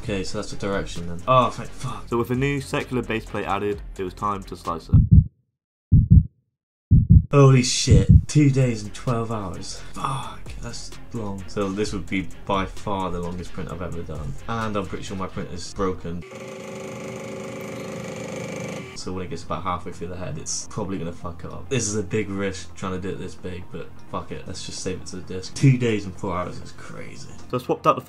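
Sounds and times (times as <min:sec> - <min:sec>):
heartbeat thumps: 0:04.9 - 0:05.3, 0:05.9 - 0:06.3, 0:06.9 - 0:07.3, 0:07.9 - 0:08.4
printer motors buzzing: 0:16.2 - 0:19.0.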